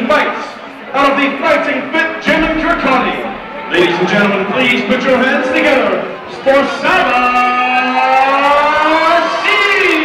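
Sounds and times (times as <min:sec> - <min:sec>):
announcer calling through microphone: 0:00.0 - 0:10.0.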